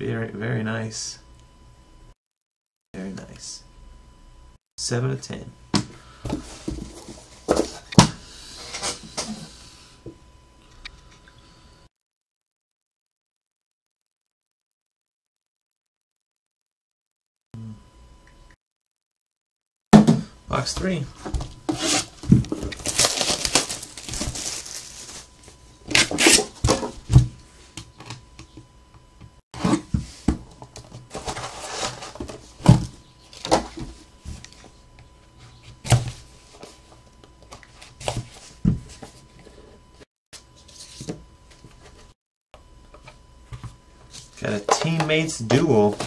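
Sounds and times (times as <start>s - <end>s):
wrapping crinkling and tearing: 21.8s - 26.4s.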